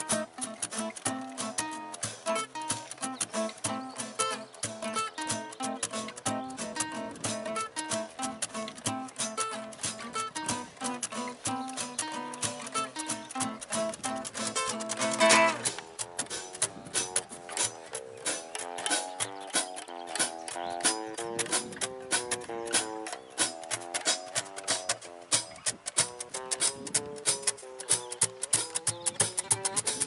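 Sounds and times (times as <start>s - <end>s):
acoustic guitars: 0.0s - 30.0s
cajon drum: 0.0s - 30.0s.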